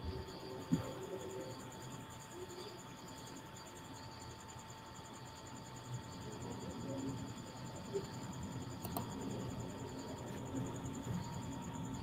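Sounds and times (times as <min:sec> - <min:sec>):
faint steady tone: 0:00.0 - 0:12.0
low background noise: 0:00.0 - 0:12.0.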